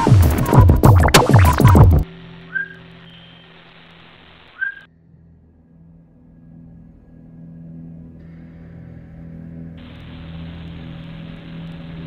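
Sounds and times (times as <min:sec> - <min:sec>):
low steady hum: 0:00.9 - 0:12.0
whistle-like chirps: 0:02.5 - 0:03.5, 0:04.6 - 0:04.9.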